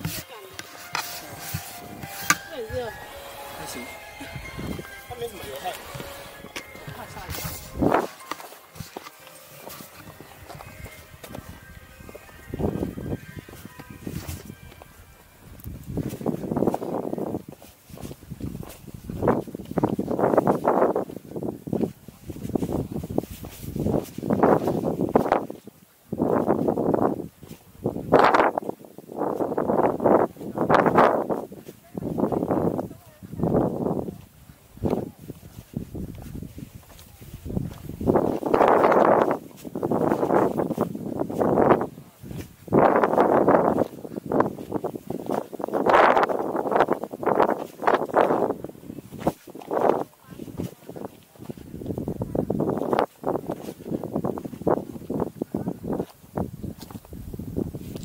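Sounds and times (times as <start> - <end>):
footsteps on stony dirt trail: 0.0 - 58.0
wind gusting on microphone: 1.2 - 9.0, 9.6 - 58.0.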